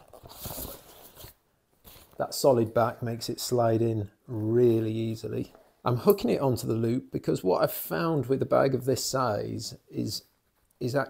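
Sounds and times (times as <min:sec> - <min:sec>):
plastic scraping against nylon: 0:00.0 - 0:02.4.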